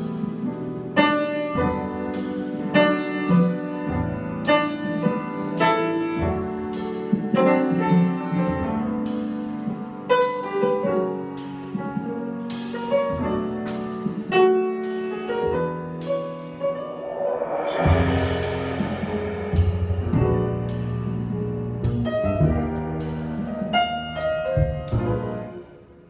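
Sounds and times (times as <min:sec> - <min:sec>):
acoustic piano: 0:00.0 - 0:26.0
cymbals struck with sticks: 0:16.1 - 0:22.3
upright double bass: 0:17.8 - 0:25.5.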